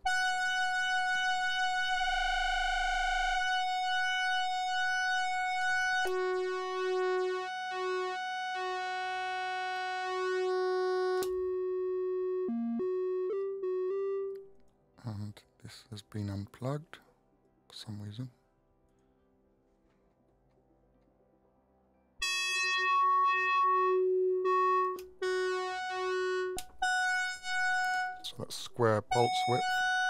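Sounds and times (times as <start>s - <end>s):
synthesizer held notes: 0.0s - 14.4s, 22.2s - 30.0s
click: 11.2s - 11.4s, 24.8s - 25.1s, 26.6s - 26.8s.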